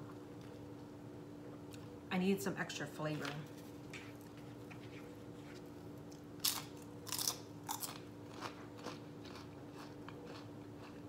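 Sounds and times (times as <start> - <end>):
crunchy chewing: 4.0 - 11.0.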